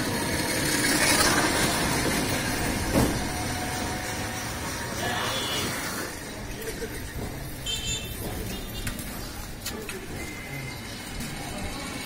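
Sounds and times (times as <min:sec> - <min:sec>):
street traffic rumbling: 0:00.0 - 0:12.0
high-pitched vehicle toot: 0:05.0 - 0:06.1, 0:07.6 - 0:08.9.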